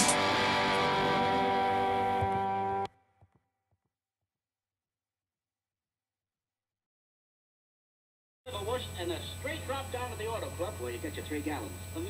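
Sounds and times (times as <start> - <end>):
distorted electric guitar chord: 0.0 - 2.9.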